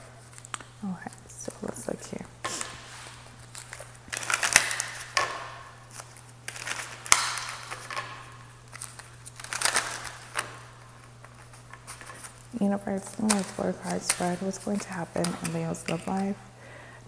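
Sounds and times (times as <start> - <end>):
cards being shuffled: 2.4 - 16.4.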